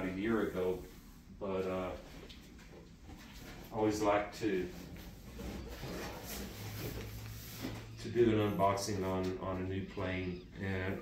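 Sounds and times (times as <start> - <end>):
cardboard box rustling and scraping: 5.2 - 8.0.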